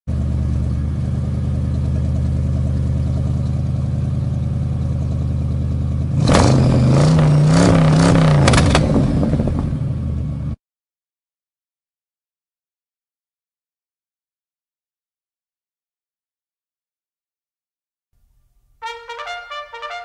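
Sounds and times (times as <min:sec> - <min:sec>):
car engine idling: 0:00.1 - 0:07.5, 0:08.1 - 0:10.6
car engine revving: 0:06.0 - 0:10.3.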